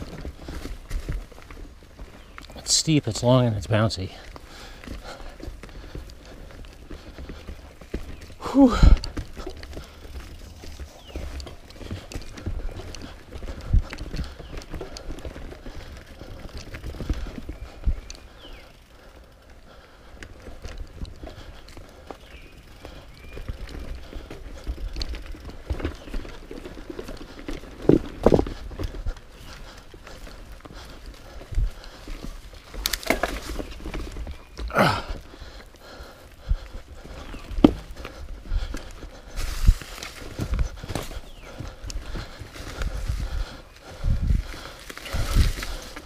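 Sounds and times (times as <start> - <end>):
bike rattling over roots: 0.0 - 46.0
bike tyre noise: 0.0 - 46.0.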